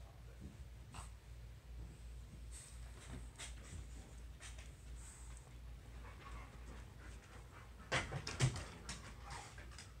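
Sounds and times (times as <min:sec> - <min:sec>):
dog panting: 0:02.6 - 0:10.0.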